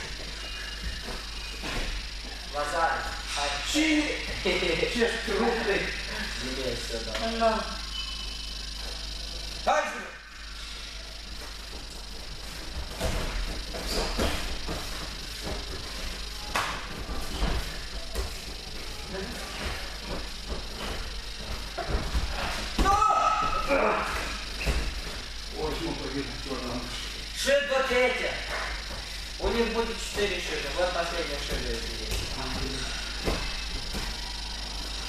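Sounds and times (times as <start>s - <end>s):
thuds and shuffling on gym mats: 0.0s - 2.5s, 11.2s - 25.9s, 28.6s - 35.0s.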